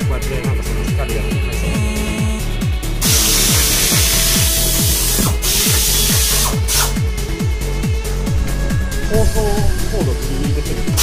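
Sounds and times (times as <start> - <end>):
kick drum beat: 0.0 - 8.0
electronic dance music: 1.0 - 7.0.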